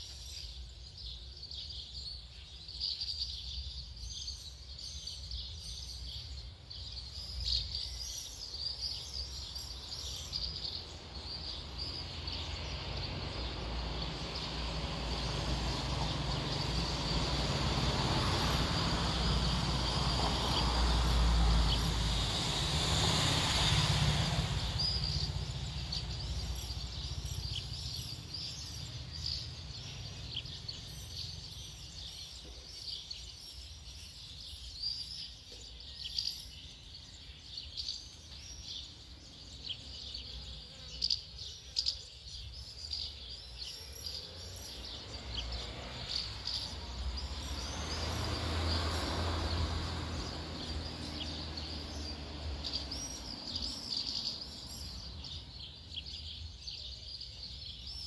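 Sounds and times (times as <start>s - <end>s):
birds chirping: 0.0s - 58.0s
broad rumble and hiss: 8.3s - 33.6s.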